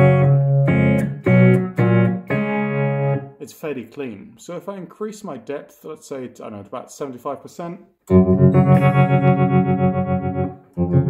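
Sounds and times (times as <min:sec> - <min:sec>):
electric guitar chords with tremolo: 0:00.0 - 0:03.3, 0:08.1 - 0:11.0.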